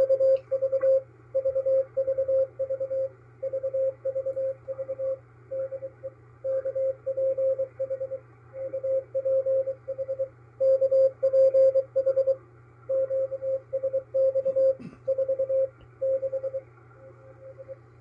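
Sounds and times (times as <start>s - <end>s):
morse code tone: 0.0s - 16.7s
low hum: 0.0s - 18.0s
faint radio hiss: 15.7s - 18.0s.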